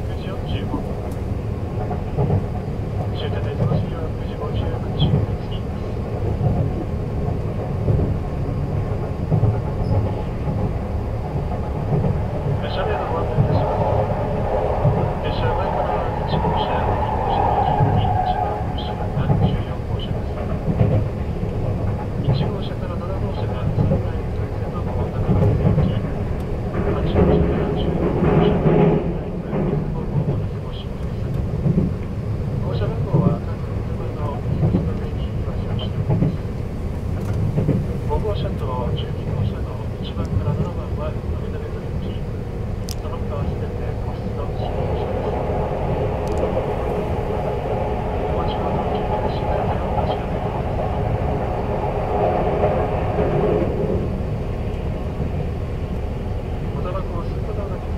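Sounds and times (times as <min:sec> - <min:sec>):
train low rumble: 0:00.0 - 0:57.9.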